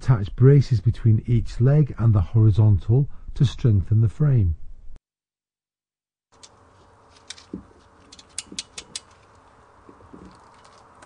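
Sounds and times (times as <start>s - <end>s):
sharp metallic clicks: 8.1s - 9.3s.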